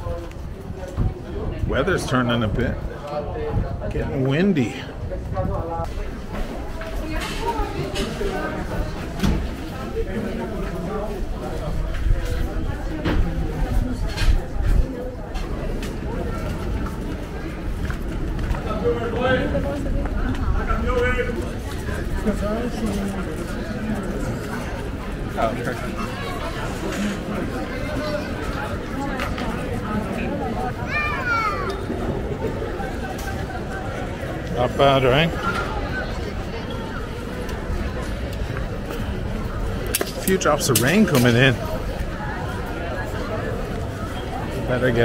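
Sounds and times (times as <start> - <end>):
wind rumble on microphone: 0.0 - 4.2
people chatting: 0.0 - 45.0.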